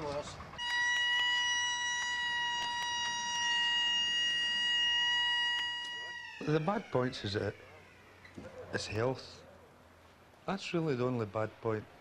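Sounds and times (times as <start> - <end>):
factory hooter: 0.6 - 8.3.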